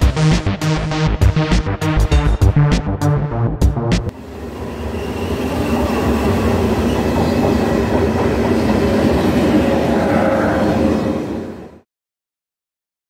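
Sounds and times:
train wheels rumbling on rails: 4.2s - 11.8s
train clickety-clack: 5.4s - 10.2s.

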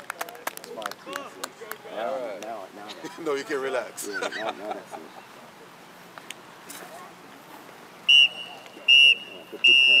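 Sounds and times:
referee's whistle blasts: 8.1s - 10.0s.

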